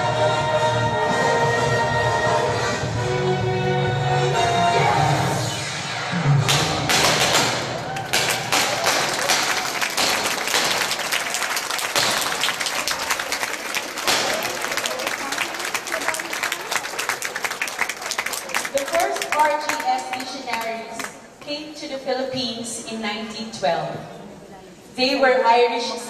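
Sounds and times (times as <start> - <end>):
audience applauding: 6.9 - 21.1.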